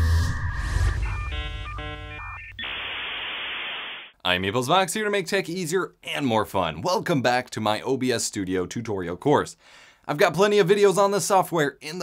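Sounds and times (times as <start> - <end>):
synthesized jingle: 0.0 - 2.9
static hiss: 2.5 - 4.1.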